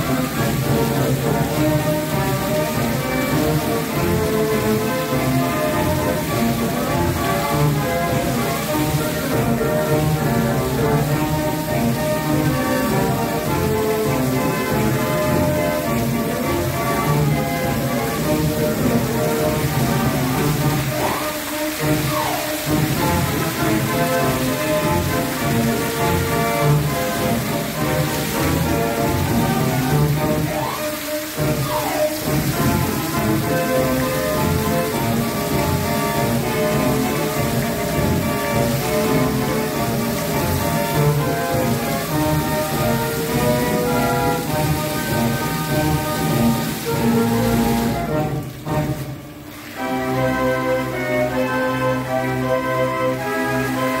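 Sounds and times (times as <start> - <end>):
fountain jets splashing: 0.0 - 54.0
music playing: 0.0 - 54.0.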